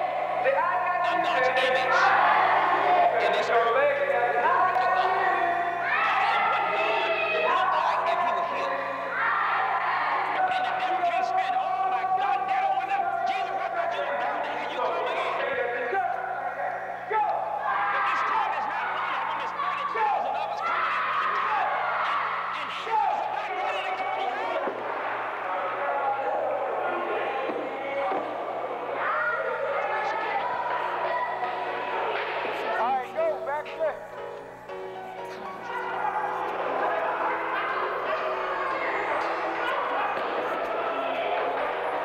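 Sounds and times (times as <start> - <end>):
music: 0.0 - 42.0
voices: 0.0 - 42.0
people shouting in unison: 5.8 - 7.8.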